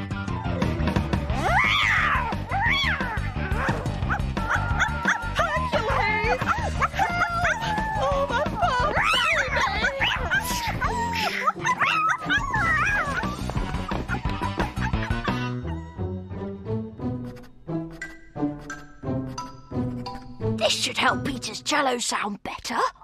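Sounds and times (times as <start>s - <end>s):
lively background music: 0.0s - 22.2s
cartoon dog barking and yipping: 2.8s - 13.4s.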